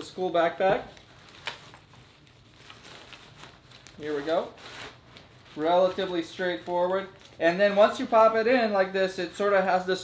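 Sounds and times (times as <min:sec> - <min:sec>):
fabric rustling: 0:00.6 - 0:08.5.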